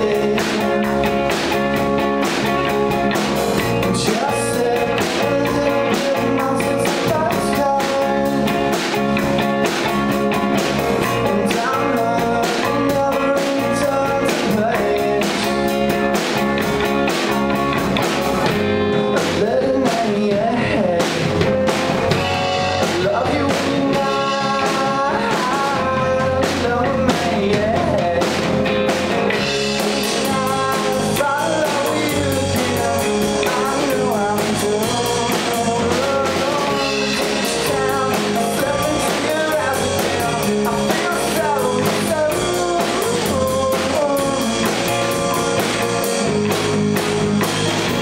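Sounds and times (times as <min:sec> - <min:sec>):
drum kit steady beat: 0:00.0 - 0:48.0
guitar: 0:00.0 - 0:48.0
rock band playing live: 0:00.0 - 0:48.0.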